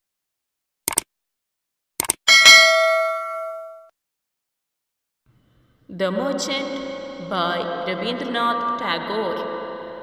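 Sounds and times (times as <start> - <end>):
bright bell ding: 2.3 - 3.9.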